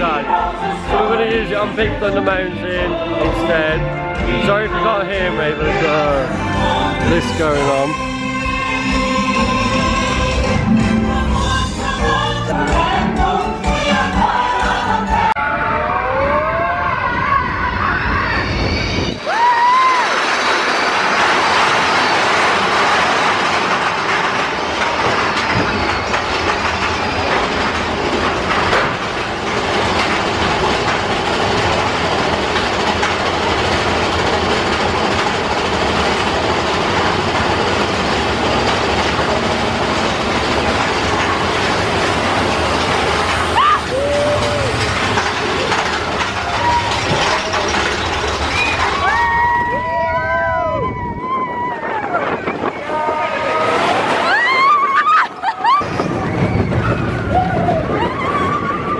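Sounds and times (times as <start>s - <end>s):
roller coaster rattling on track: 0.0s - 58.9s
riders whooping: 15.4s - 58.9s.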